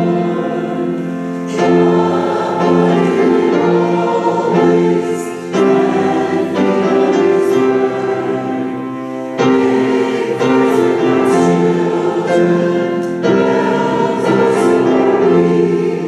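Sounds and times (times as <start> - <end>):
choir and congregation singing hymn: 0.0 - 16.0.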